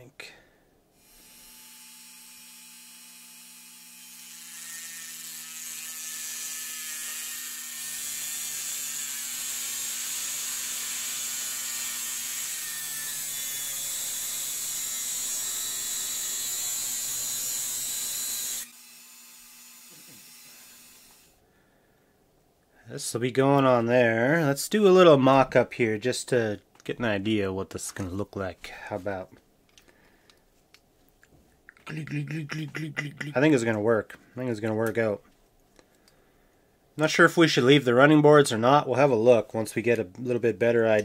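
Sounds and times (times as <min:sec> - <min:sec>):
rotary tool motor whine: 0:01.0 - 0:21.4.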